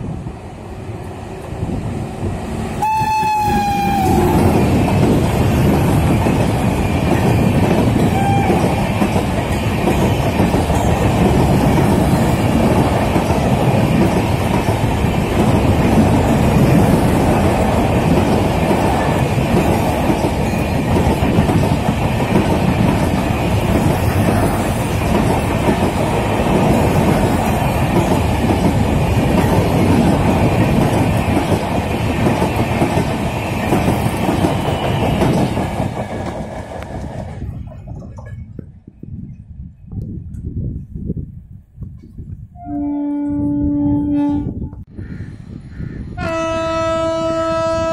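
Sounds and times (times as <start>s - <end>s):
train passing at speed: 0.0s - 38.7s.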